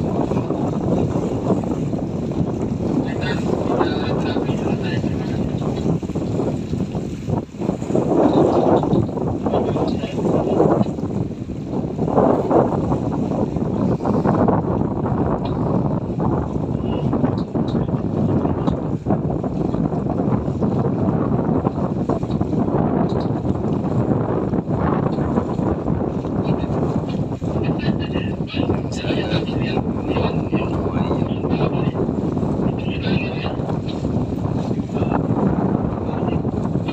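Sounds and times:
wind rushing over microphone: 0:00.0 - 0:36.9.

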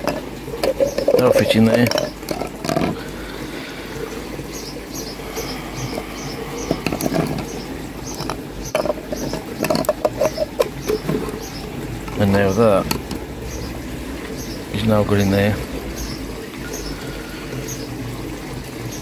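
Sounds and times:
hose rustling: 0:00.0 - 0:03.1
plastic pipe fittings clicking: 0:00.0 - 0:03.1, 0:06.6 - 0:13.2.

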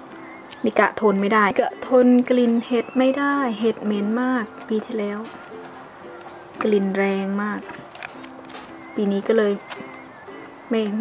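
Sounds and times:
ukulele music: 0:00.0 - 0:11.0
woman speaking: 0:00.6 - 0:05.4, 0:06.6 - 0:07.8, 0:09.0 - 0:09.7, 0:10.7 - 0:11.0.

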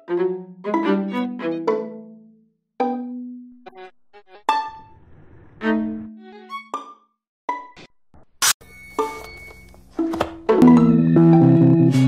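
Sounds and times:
electronic notes: 0:10.4 - 0:12.0.

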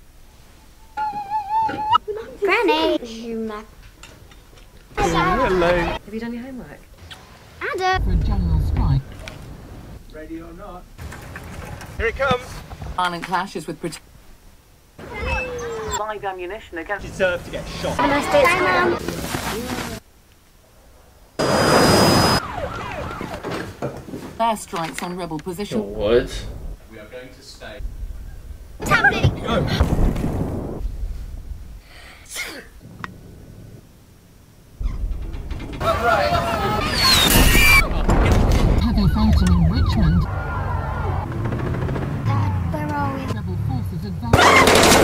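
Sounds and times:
low rumble: 0:08.0 - 0:10.1, 0:27.8 - 0:31.9, 0:32.8 - 0:36.7
loud burst of noise: 0:21.4 - 0:23.0
wailing sirens: 0:21.4 - 0:23.8, 0:38.8 - 0:42.5.

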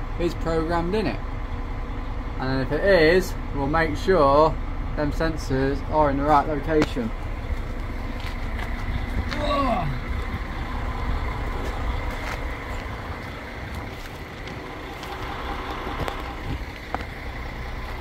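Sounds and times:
vehicle engine rumbling: 0:00.0 - 0:18.0
short falling vocal sound: 0:09.3 - 0:10.2.

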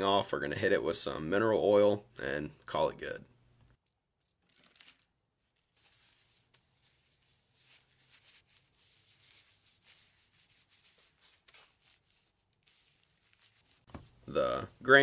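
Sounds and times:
paper towel rubbing wood: 0:05.6 - 0:14.7.

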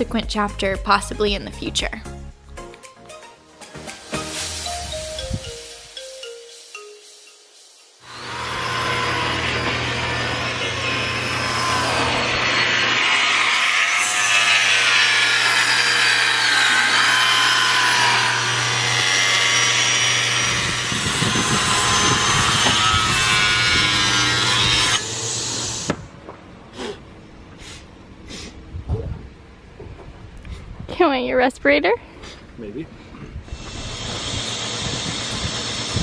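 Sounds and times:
table saw cutting wood: 0:08.0 - 0:26.1, 0:33.5 - 0:36.0.

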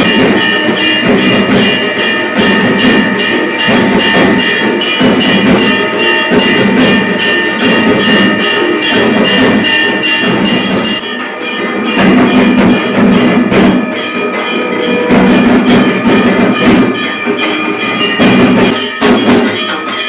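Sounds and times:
temple bells clanging: 0:00.0 - 0:20.0.

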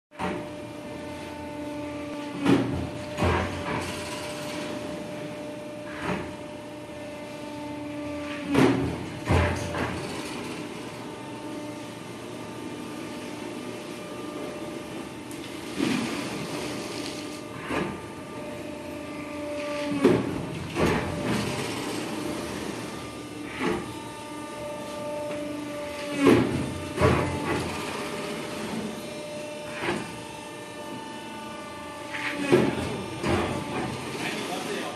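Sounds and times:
cutting press humming: 0:00.2 - 0:34.9.

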